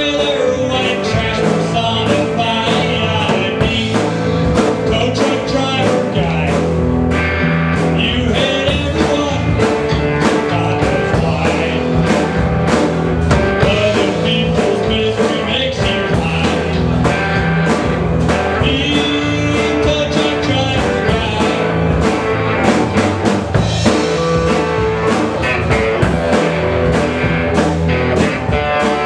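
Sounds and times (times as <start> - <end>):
electric guitar: 0.0 - 29.0
rock band playing: 0.0 - 29.0
steady drum beat: 0.0 - 29.0.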